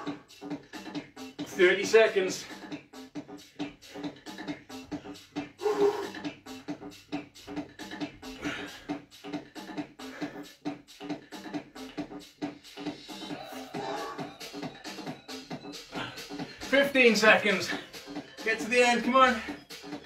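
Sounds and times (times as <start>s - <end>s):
music with fast steady beat: 0.0s - 20.0s.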